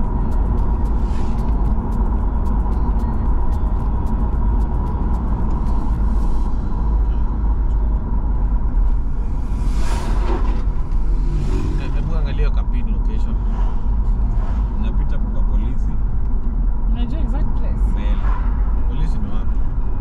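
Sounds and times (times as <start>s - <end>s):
car interior road rumble: 0.0s - 20.0s
indistinct voices: 9.5s - 13.8s.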